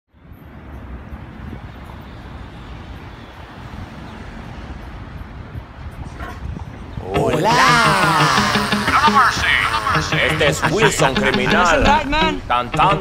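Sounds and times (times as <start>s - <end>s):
wind on microphone: 5.0s - 7.9s
man shouting: 7.0s - 11.8s.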